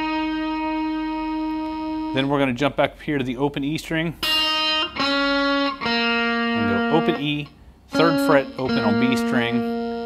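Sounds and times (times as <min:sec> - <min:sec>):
electric guitar sustained notes: 0:00.0 - 0:02.3, 0:04.3 - 0:10.0.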